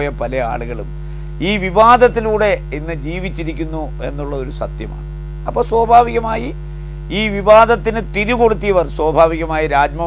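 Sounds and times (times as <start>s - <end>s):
low mains hum: 0.0s - 10.0s
man speaking: 0.0s - 10.0s.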